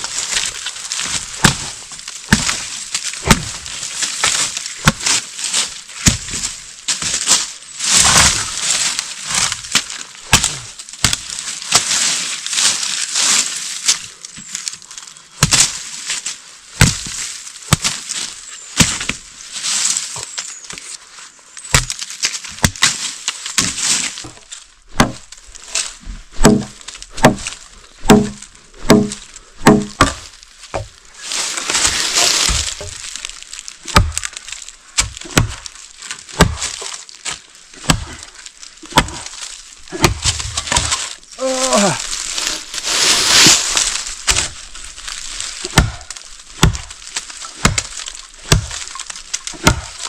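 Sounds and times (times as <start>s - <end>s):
machete chopping branches: 0.0s - 14.5s, 15.4s - 15.8s, 16.7s - 19.2s, 21.7s - 50.0s
leafy brush rustling: 0.0s - 50.0s
twigs cracking: 0.0s - 50.0s.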